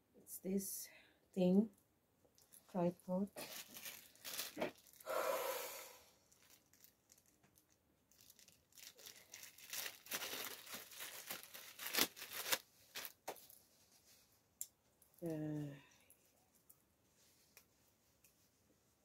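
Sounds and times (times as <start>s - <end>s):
plastic bag rustling and crinkling: 2.5s - 5.1s, 6.3s - 14.2s.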